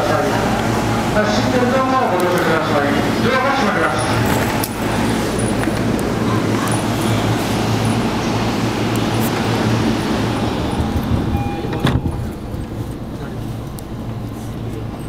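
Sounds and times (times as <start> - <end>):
electric trains rumbling: 0.0 - 15.0
station noise: 0.0 - 15.0
brief tone: 11.3 - 12.2.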